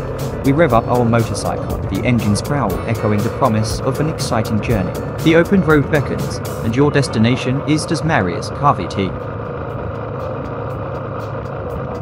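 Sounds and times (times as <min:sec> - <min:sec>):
motorcycle engine cruising: 0:00.0 - 0:12.0
road and wind noise: 0:00.0 - 0:12.0.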